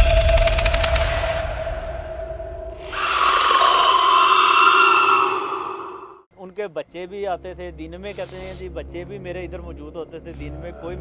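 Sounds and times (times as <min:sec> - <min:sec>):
high-pitched shrill cry: 0:02.8 - 0:06.3.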